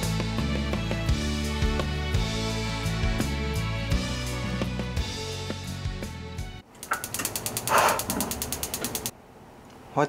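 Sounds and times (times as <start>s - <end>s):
stove igniter clicking: 6.8s - 9.1s
gas burner whoosh: 7.1s - 9.1s.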